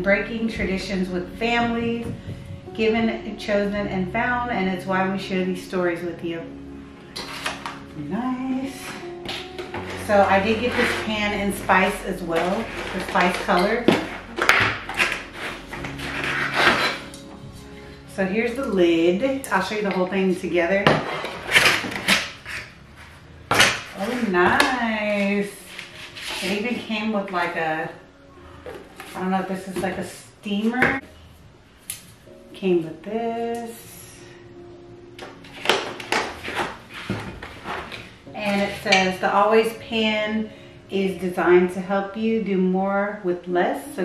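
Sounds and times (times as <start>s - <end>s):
soft background music: 0.0s - 44.0s
cardboard packaging rustling: 7.2s - 7.9s, 12.2s - 17.2s, 28.6s - 29.3s.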